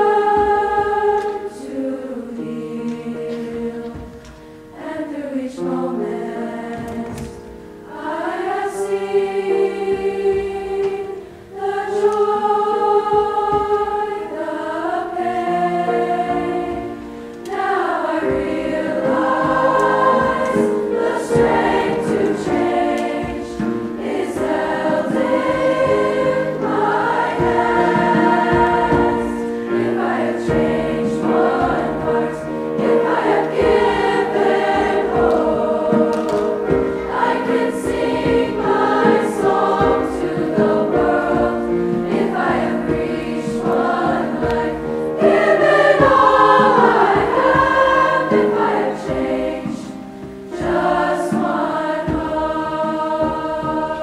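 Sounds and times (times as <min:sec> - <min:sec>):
choir singing in parts: 0:00.0 - 0:54.0
piano accompaniment: 0:00.0 - 0:54.0.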